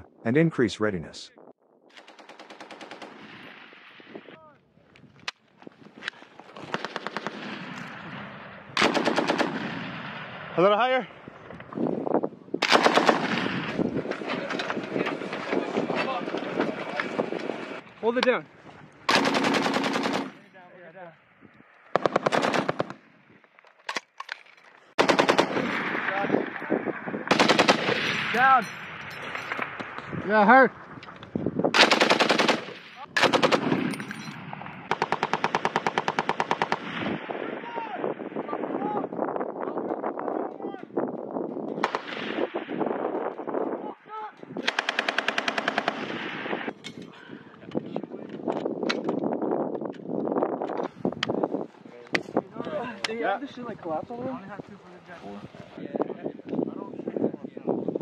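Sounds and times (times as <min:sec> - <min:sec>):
machine gun firing burst: 0:08.8 - 0:09.7, 0:12.7 - 0:13.5, 0:19.1 - 0:20.3, 0:22.0 - 0:22.9, 0:25.0 - 0:25.8, 0:27.3 - 0:28.0, 0:31.7 - 0:33.9, 0:44.7 - 0:46.1.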